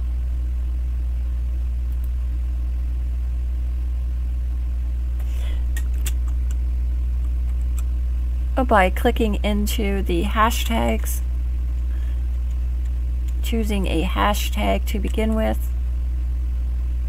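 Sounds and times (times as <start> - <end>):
electrical hum: 0.0 - 17.0.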